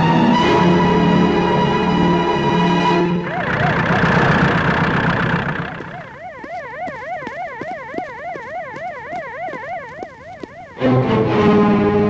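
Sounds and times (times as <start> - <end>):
police siren warbling: 0.0 - 11.1.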